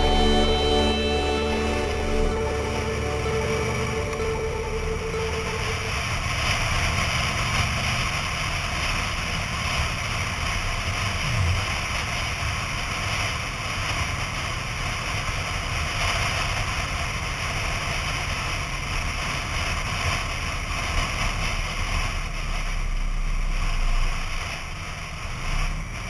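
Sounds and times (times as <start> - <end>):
motorcycle engine drone: 0.0 - 17.0.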